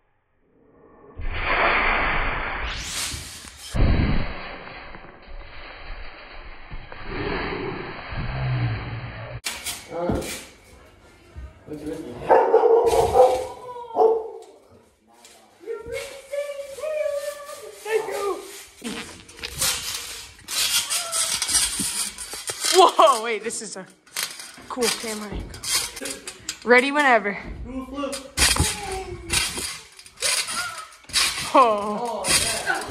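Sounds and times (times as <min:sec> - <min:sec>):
steel springs clinking: 0:19.4 - 0:27.3, 0:28.0 - 0:32.9.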